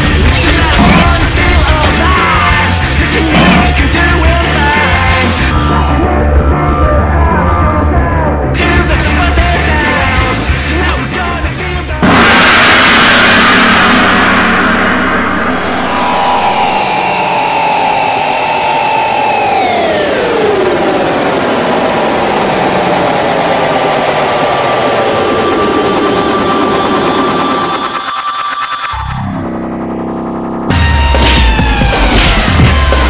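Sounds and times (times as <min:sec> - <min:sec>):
loud burst of noise: 0:00.0 - 0:05.5, 0:12.0 - 0:29.7
dense whirring drone: 0:00.0 - 0:09.6, 0:12.0 - 0:33.0
held tone sliding down: 0:12.4 - 0:22.5.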